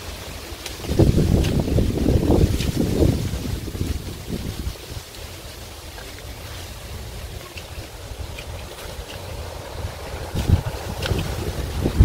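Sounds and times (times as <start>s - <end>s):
wind buffeting microphone: 0.8s - 12.0s.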